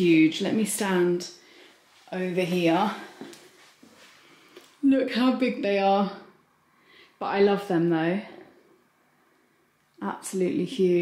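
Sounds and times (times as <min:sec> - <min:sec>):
woman speaking: 0:00.0 - 0:01.4, 0:02.1 - 0:03.3, 0:04.8 - 0:06.4, 0:07.2 - 0:08.5, 0:10.0 - 0:11.0
footsteps on carpet: 0:01.9 - 0:04.7.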